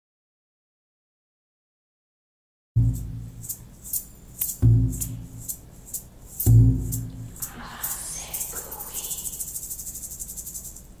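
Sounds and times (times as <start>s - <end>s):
shaker shaken rapidly: 2.8s - 11.0s.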